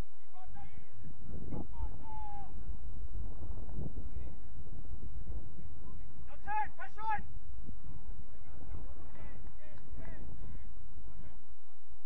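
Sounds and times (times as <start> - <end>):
wind rumble on microphone: 0.0 - 12.0
player shouting: 1.7 - 2.6, 6.3 - 7.3.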